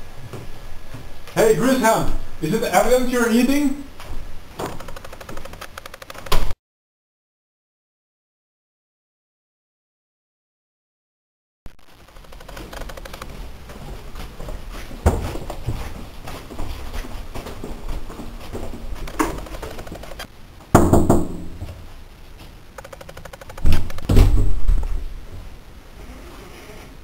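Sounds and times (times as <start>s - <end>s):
footsteps in hallway: 0.0s - 1.5s, 3.9s - 5.5s, 12.3s - 20.3s
loud thumps: 19.1s - 21.8s, 22.8s - 25.2s.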